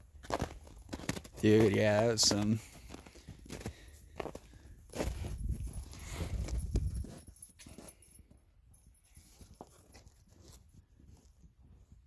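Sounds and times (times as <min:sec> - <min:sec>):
footsteps on snow: 0:00.0 - 0:08.1.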